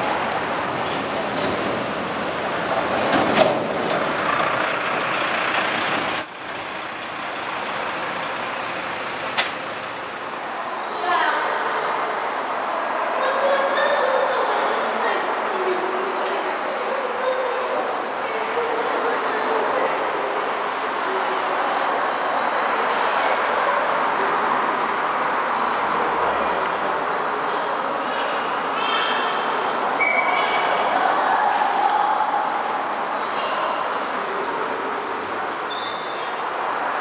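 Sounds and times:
road traffic hiss and rumble: 0.0s - 37.0s.

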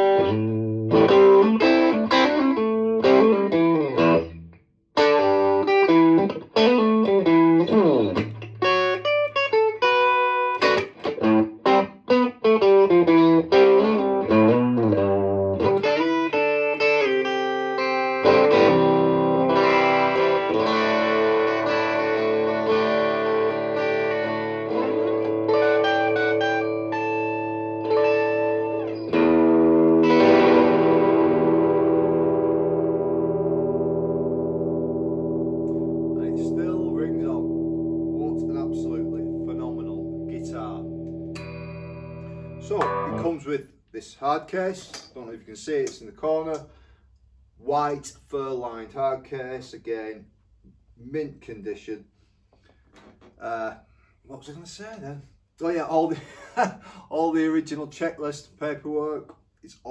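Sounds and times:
clean electric guitar chords: 0.0s - 43.4s.

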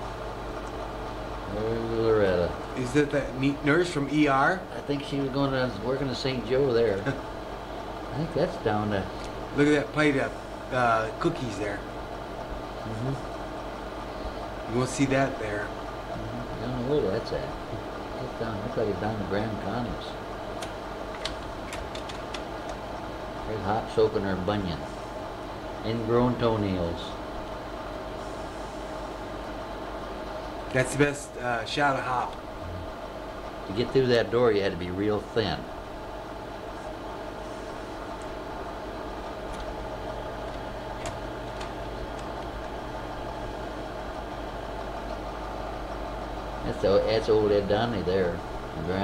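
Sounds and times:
projector fan running: 0.0s - 49.0s.

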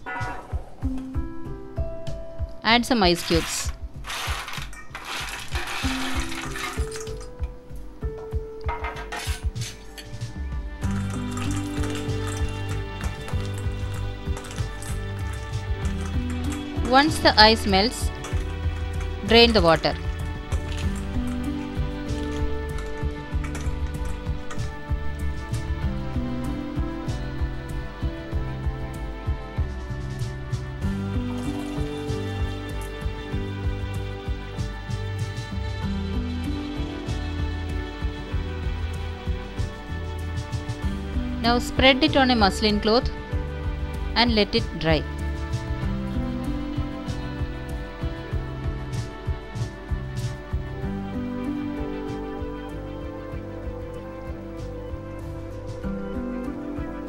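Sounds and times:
background music: 0.0s - 57.0s
peas poured into metal colander: 3.1s - 7.3s, 10.9s - 25.6s
ice clinking as spoon stirs: 3.2s - 7.3s, 11.0s - 17.2s, 18.0s - 24.7s
ice cubes clattering into metal bowl: 3.2s - 7.3s, 8.7s - 10.2s, 11.0s - 17.2s, 18.0s - 24.7s, 31.3s - 32.9s
water splashing: 4.9s - 7.2s.

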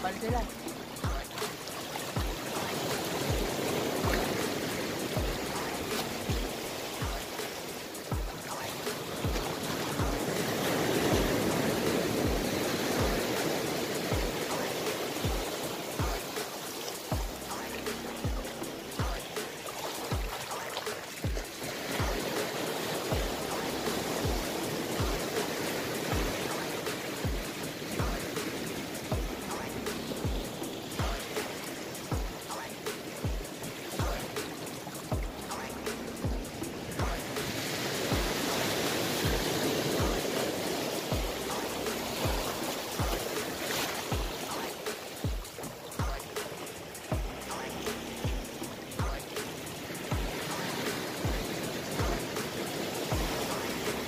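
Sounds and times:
music with low beat: 0.0s - 54.0s
surf breaking on shore: 0.0s - 54.0s.

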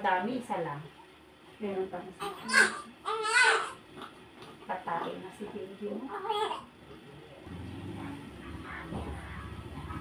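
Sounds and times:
newborn baby crying: 2.2s - 3.8s, 6.1s - 6.7s.

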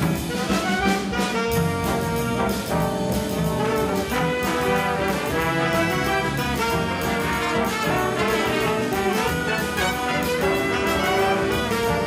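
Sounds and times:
drum kit cymbals: 0.0s - 12.0s
trombones and trumpets: 0.0s - 12.0s.

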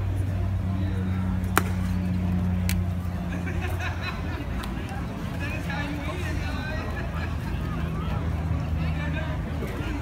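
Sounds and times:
baseball smacking into mitt: 1.5s - 2.8s.

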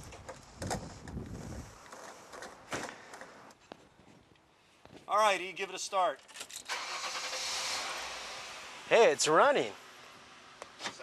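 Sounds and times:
car engine starting and running: 6.6s - 10.8s.

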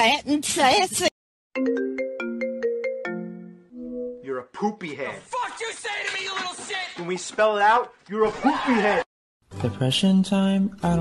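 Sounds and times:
phone ringtone marimba-like notes: 1.6s - 4.2s.

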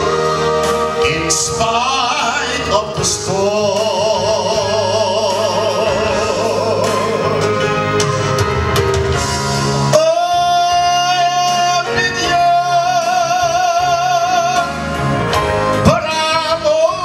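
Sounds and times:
man singing gospel song: 0.0s - 8.2s, 9.8s - 17.0s
backing music: 0.0s - 17.0s.

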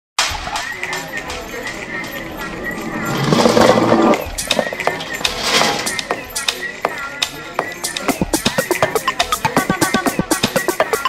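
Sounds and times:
music: 0.2s - 11.0s
scattered clicks and knocks: 0.2s - 11.0s
voices: 0.2s - 11.0s.

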